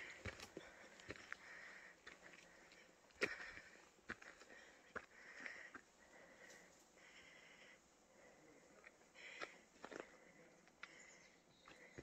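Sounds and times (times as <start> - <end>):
footsteps on rocky trail: 0.0 - 7.2, 8.8 - 12.0
soft breathing: 0.0 - 12.0.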